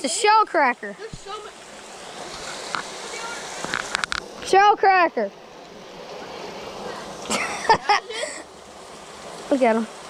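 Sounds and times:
water rushing over stones: 0.0 - 10.0.

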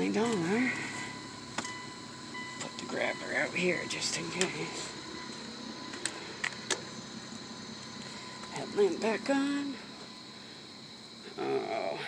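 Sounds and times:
faint steady tone: 0.0 - 12.0
low background hum: 0.0 - 12.0.

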